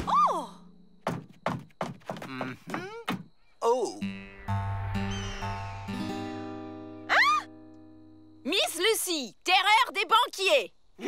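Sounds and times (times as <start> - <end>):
cartoon cry: 7.1 - 7.5.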